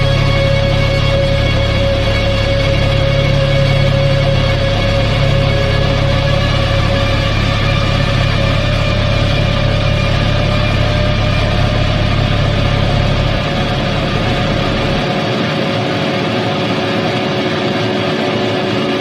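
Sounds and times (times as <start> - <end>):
heavy bass: 0.0 - 19.0
rock band droning chord: 0.0 - 19.0.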